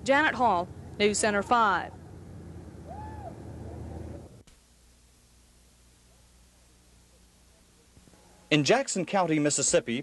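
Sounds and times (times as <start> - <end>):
car traffic rumble: 0.0 - 4.4.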